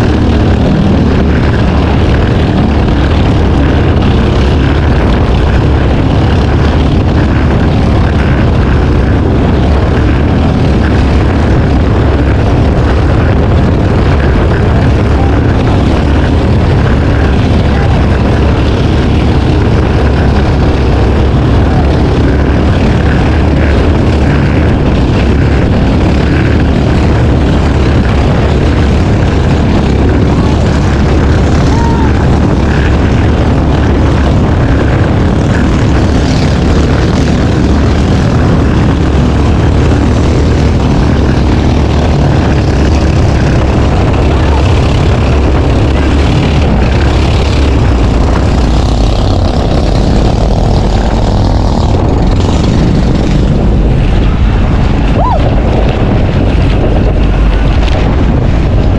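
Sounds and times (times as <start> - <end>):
boat engine droning: 0.0 - 58.9
wind buffeting microphone: 0.0 - 58.9.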